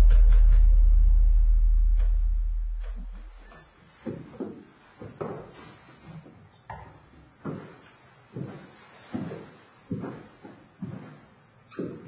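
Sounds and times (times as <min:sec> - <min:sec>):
footsteps on hard floor: 0:01.9 - 0:12.0.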